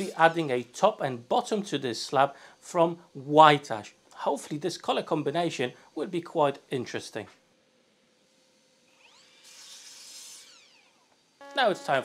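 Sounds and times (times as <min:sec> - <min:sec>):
mitre saw cutting board: 0:00.0 - 0:00.6, 0:08.9 - 0:12.0.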